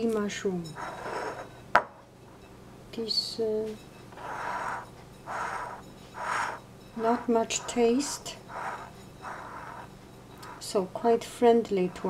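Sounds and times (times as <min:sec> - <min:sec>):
soft breath: 0:04.2 - 0:10.8.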